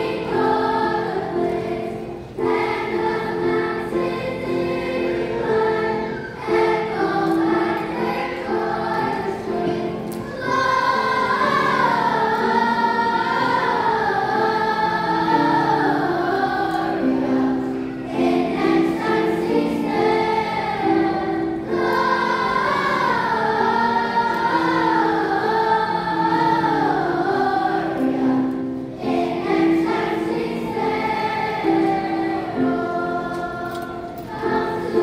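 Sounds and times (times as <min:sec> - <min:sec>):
children's choir singing: 0:00.0 - 0:35.0
piano accompaniment: 0:00.0 - 0:35.0.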